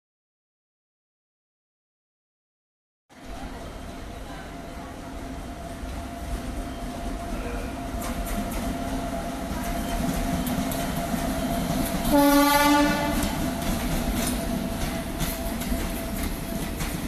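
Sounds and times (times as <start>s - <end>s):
train rumbling on rails: 3.1s - 17.0s
wheels clicking over rail joints: 13.1s - 17.0s.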